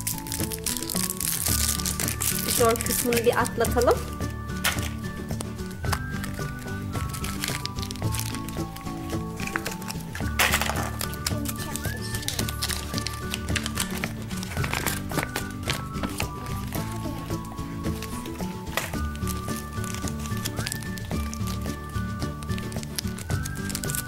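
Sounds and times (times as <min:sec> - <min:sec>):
background music: 0:00.0 - 0:24.0
plastic packaging rustling: 0:00.0 - 0:24.0.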